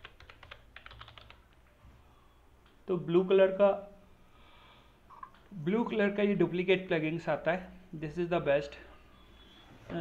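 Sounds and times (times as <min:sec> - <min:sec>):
computer keyboard typing: 0:00.0 - 0:01.5.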